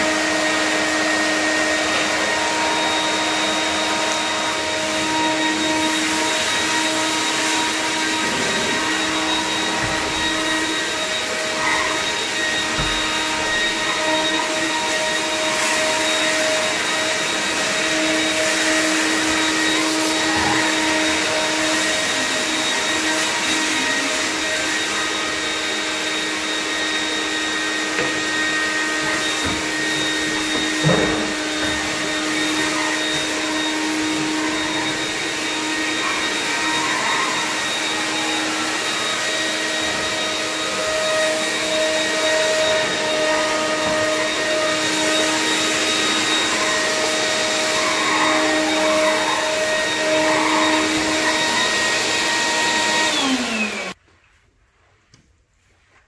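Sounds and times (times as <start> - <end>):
shop vacuum running: 0.0 - 54.0.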